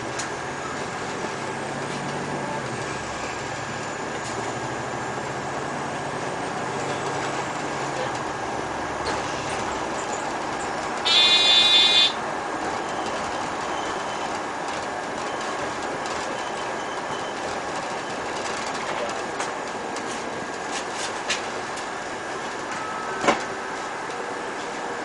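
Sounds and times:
bus road noise: 0:00.0 - 0:25.0
loud high-pitched beep: 0:11.1 - 0:12.2.

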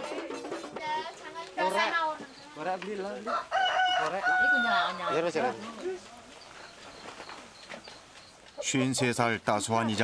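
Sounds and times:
rooster crowing: 0:03.1 - 0:05.7
people talking: 0:08.6 - 0:10.0.

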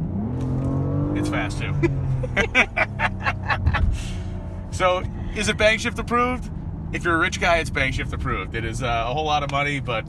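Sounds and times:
car engine droning: 0:00.0 - 0:10.0
road noise: 0:00.0 - 0:10.0
person laughing: 0:01.7 - 0:04.2.

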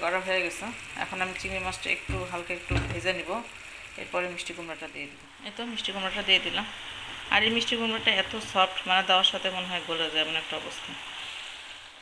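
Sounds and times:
prawns and onions sizzling in oil: 0:00.0 - 0:12.0.

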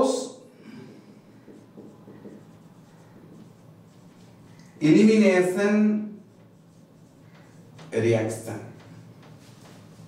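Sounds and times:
marker writing on whiteboard: 0:01.2 - 0:10.0.

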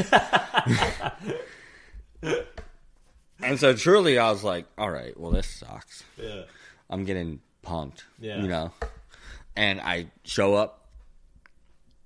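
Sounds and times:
person laughing: 0:00.0 - 0:01.5, 0:02.2 - 0:02.6.

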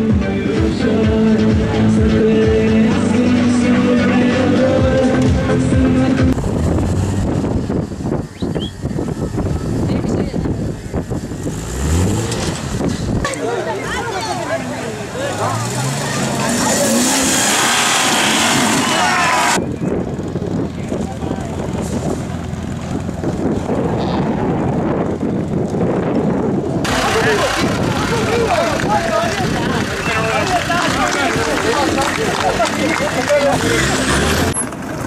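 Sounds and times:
off-road engines working: 0:00.0 - 0:35.0
spectators chatting and shouting: 0:00.0 - 0:35.0.

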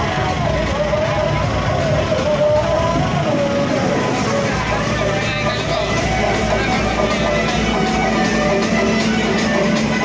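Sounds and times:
loud music with heavy bass: 0:00.0 - 0:10.0
person speaking over music: 0:04.5 - 0:08.8.

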